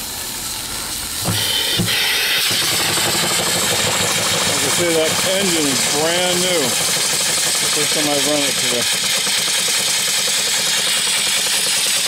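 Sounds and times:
steam engine chuffing and clatter: 0:00.0 - 0:12.0
steam hissing: 0:00.0 - 0:12.0
steam engine knocks: 0:01.2 - 0:12.0.

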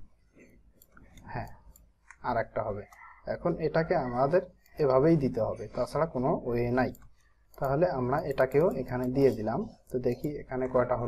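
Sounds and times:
computer mouse clicks: 0:00.4 - 0:02.3, 0:06.7 - 0:10.4.

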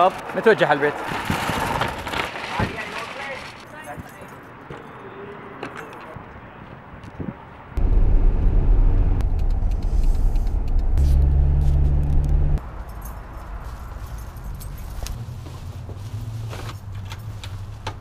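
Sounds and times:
shopping bags rustling: 0:00.7 - 0:03.7
car engine and road rumble: 0:07.7 - 0:18.0.

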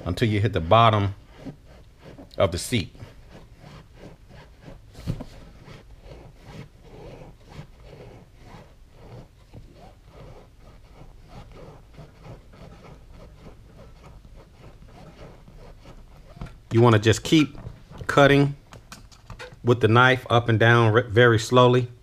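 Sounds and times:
knife rasping through foam: 0:00.0 - 0:18.5.

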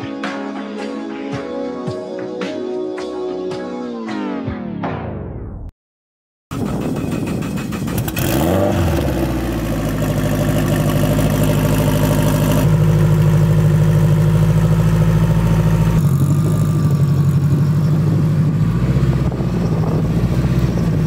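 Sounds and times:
car engine starting and idling: 0:06.5 - 0:21.0.

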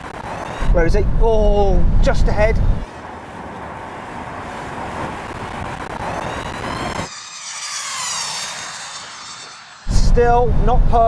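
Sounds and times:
drone motor whine: 0:05.7 - 0:11.0.

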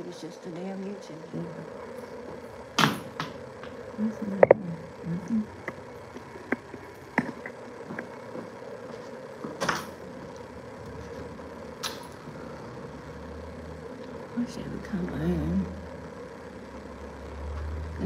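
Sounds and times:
room hum: 0:00.0 - 0:18.0.

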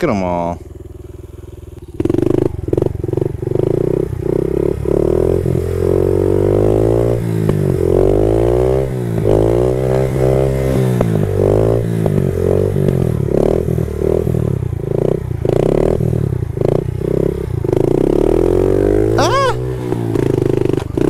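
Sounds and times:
motorbike engine revving: 0:00.0 - 0:21.0.

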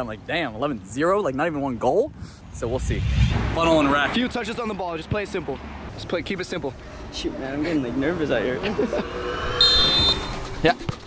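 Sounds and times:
referee's whistle blast: 0:09.5 - 0:10.5.

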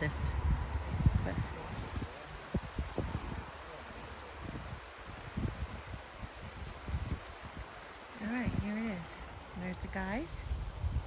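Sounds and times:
river rushing: 0:00.0 - 0:11.0
wind gusting on microphone: 0:00.0 - 0:11.0.

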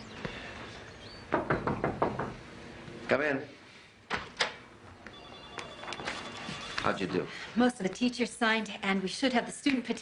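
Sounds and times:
knocking on a door: 0:01.3 - 0:02.4.

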